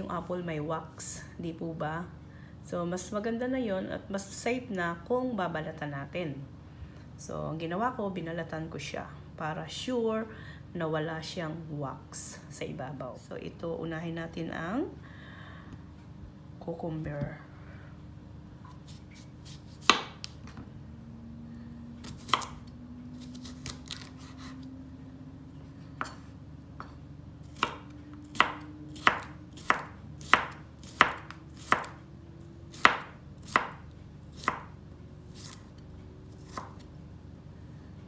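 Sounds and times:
knife chopping on wooden board: 0:18.8 - 0:20.4, 0:22.0 - 0:22.6, 0:27.5 - 0:32.0, 0:32.7 - 0:33.8, 0:34.4 - 0:35.6, 0:36.4 - 0:36.8.

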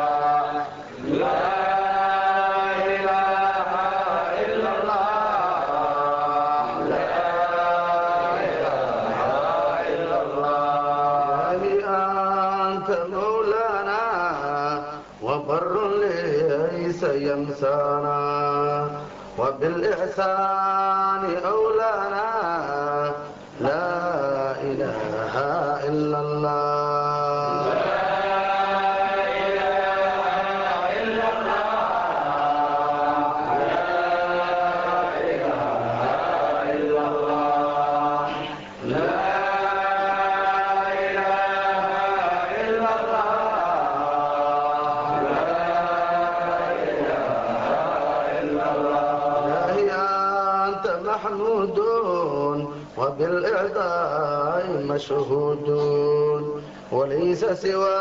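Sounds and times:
voices chanting devotional song: 0:00.0 - 0:58.0.

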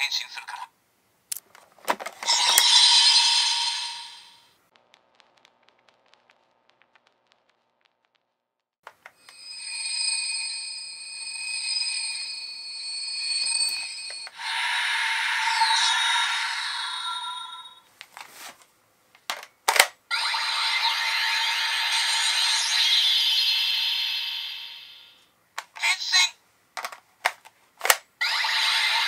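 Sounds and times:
ringing sound effect: 0:02.3 - 0:04.5, 0:09.2 - 0:17.9, 0:20.1 - 0:25.2
sharp clicks: 0:04.7 - 0:08.3
whooshing effects: 0:14.4 - 0:17.8.

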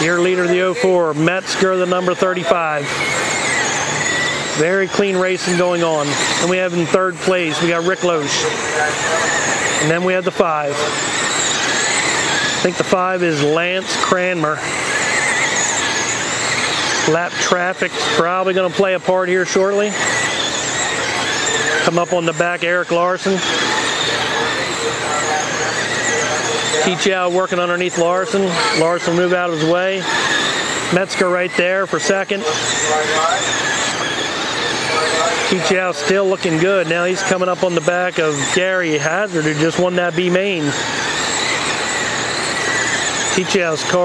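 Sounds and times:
electric motors whining: 0:00.0 - 0:44.0
steady rushing noise: 0:00.0 - 0:44.0.

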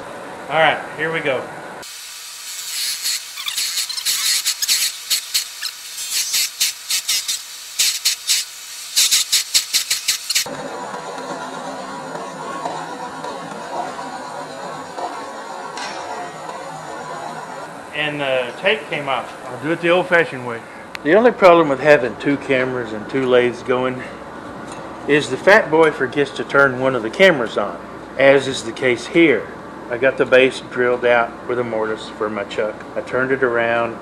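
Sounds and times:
lathe running noise: 0:01.8 - 0:22.1
drill bit squealing in resin: 0:02.4 - 0:10.5.

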